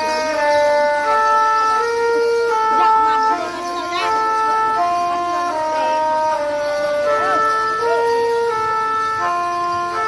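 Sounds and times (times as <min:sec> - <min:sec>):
wind instrument melody: 0:00.0 - 0:10.0.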